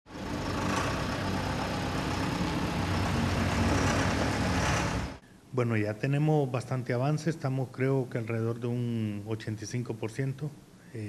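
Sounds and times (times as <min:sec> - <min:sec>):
construction machinery engines rumbling: 0:00.1 - 0:05.2.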